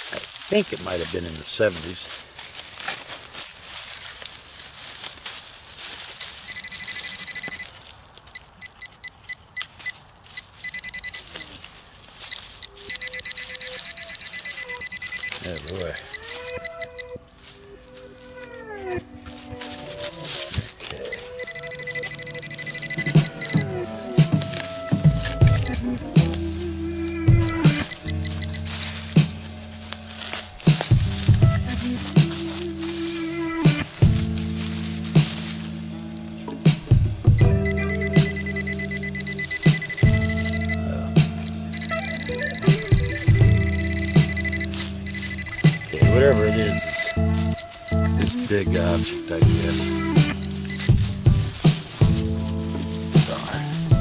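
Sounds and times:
metal detector beeping: 6.2 - 17.2, 19.8 - 36.0, 37.3 - 54.0.

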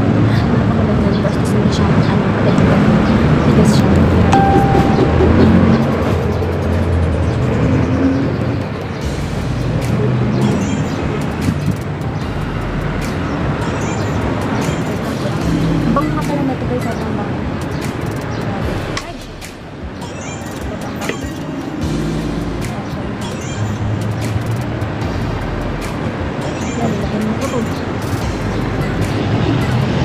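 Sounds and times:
woman talking: 0.2 - 4.2, 15.8 - 17.4, 26.7 - 27.8
background music: 1.2 - 30.0
steady low noise: 10.9 - 16.3, 23.8 - 26.4.

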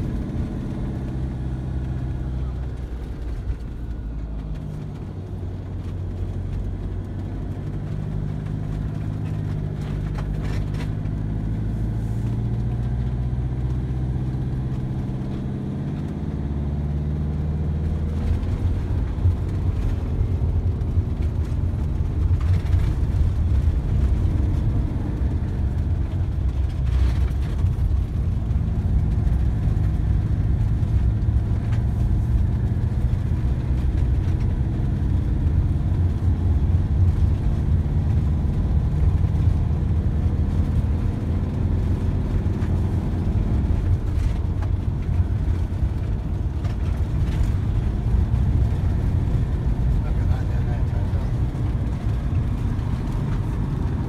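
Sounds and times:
tyres rumbling on rough road: 0.0 - 54.0
van engine: 0.0 - 54.0.

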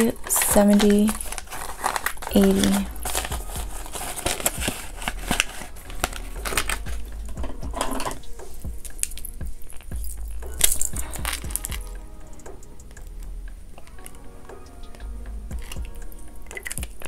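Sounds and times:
banknotes rustling: 0.0 - 7.1
quiet background music: 0.0 - 17.0.

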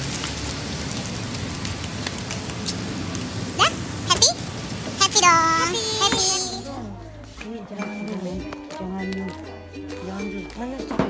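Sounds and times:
street noise hiss: 0.0 - 8.4.

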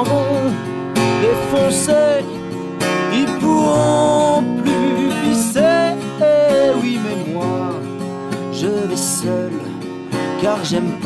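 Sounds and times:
acoustic guitar strummed: 0.0 - 11.0
person singing: 0.0 - 11.0.

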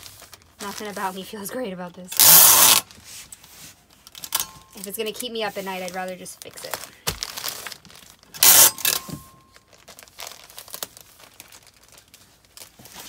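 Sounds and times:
plastic ripping: 0.0 - 1.3, 3.9 - 13.0
plastic mailer crinkling: 0.0 - 3.0, 3.8 - 13.0.

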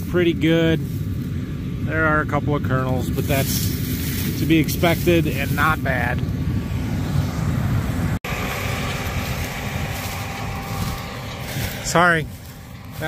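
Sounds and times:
combine harvester running: 0.0 - 13.0
wind on microphone: 3.0 - 13.0.

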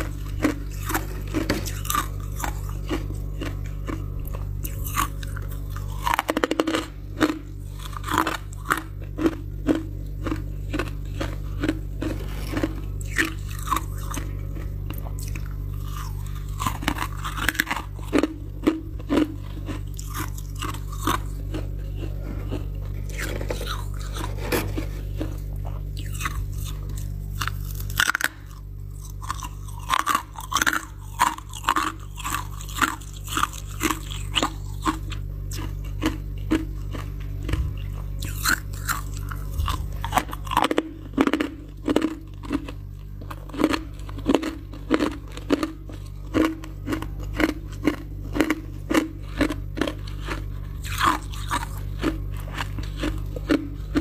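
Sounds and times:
frost crunching while chewed: 0.0 - 54.0
low steady hum: 0.0 - 54.0.

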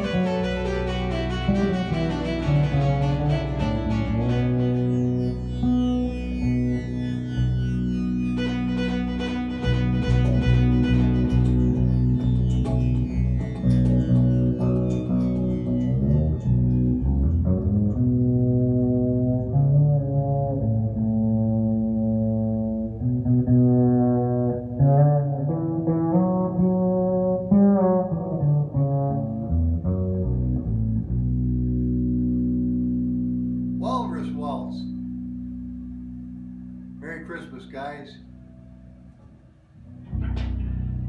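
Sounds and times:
electric bass guitar playing: 0.0 - 41.0.

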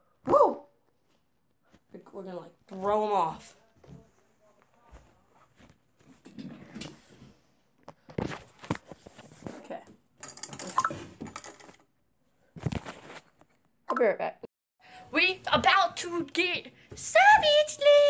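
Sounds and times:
rustling and shuffling: 2.6 - 9.9, 12.4 - 13.6
small metallic clinks: 10.2 - 11.8.

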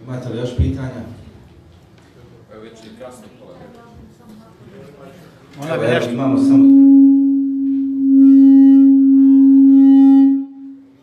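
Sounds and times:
microphone feedback howl: 6.0 - 11.0.

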